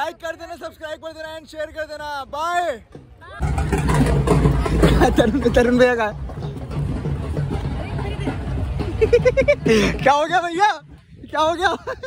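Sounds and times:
people's voices: 0:00.0 - 0:12.0
vehicle traffic rumble: 0:03.0 - 0:12.0.

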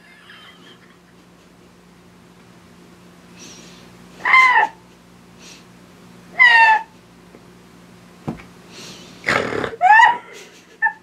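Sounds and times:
woman giggling: 0:09.8 - 0:11.0.

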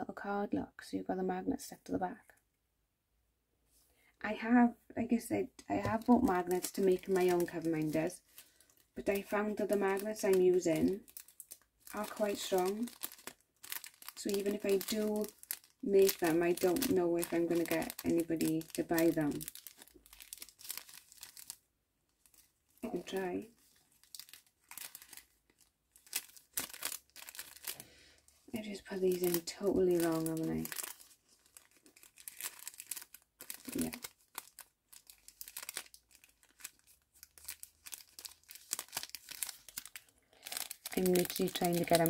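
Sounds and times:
plastic sleeve crinkling: 0:05.7 - 0:42.0
packaging rustling: 0:05.8 - 0:42.0.

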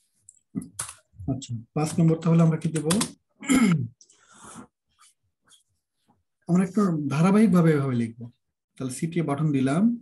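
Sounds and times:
breath into microphone: 0:04.0 - 0:05.2.

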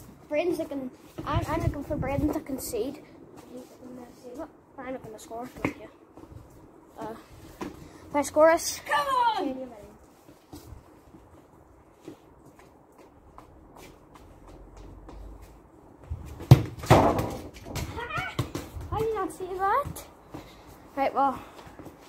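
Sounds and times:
football kicked with thud: 0:16.4 - 0:19.0.

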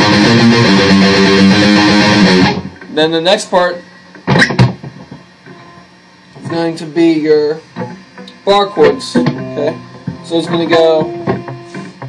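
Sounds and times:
electric guitar strings struck: 0:00.0 - 0:02.9, 0:04.2 - 0:05.6, 0:07.8 - 0:12.0.

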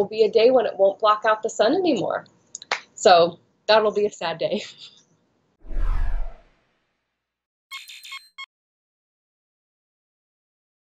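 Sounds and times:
electronic beeping chime: 0:07.7 - 0:08.5.

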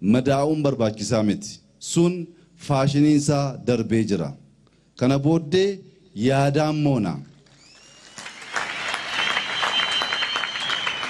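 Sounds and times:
crowd applauding: 0:07.5 - 0:11.0.

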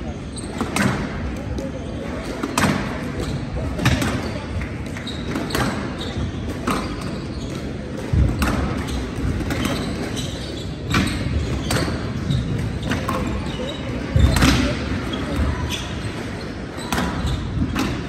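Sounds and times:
ball hitting court walls: 0:00.4 - 0:16.0, 0:16.8 - 0:18.0
racket striking squash ball: 0:00.5 - 0:01.6, 0:02.2 - 0:16.0, 0:16.8 - 0:18.0.

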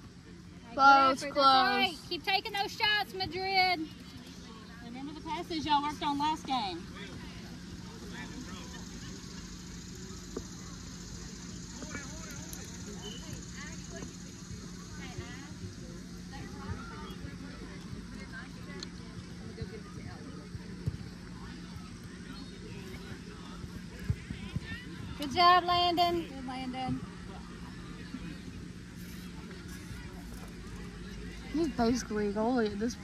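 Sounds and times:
distant shouting and chatter: 0:00.0 - 0:33.0.

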